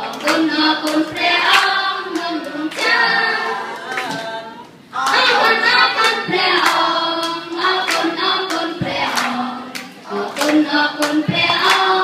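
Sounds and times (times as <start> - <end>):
children singing in unison: 0.0 - 12.0
hand claps: 0.1 - 3.0, 6.0 - 12.0.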